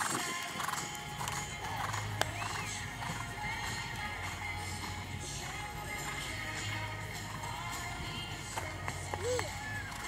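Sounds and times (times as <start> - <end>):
background music: 0.0 - 10.0
horse hooves on grass: 0.0 - 10.0.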